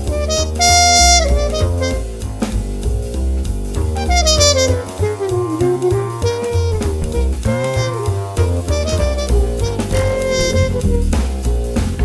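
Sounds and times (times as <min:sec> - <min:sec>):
bass accompaniment: 0:00.0 - 0:12.0
jazz trumpet melody: 0:00.0 - 0:12.0.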